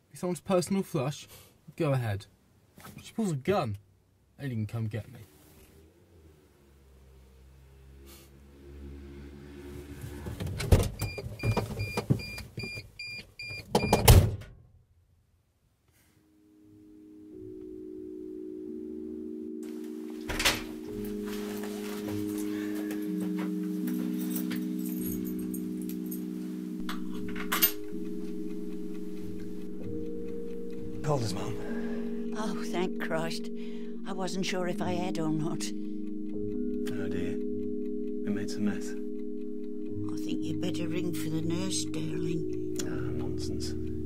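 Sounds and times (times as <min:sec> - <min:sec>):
soft background music: 0:05.3 - 0:11.2, 0:16.2 - 0:44.0.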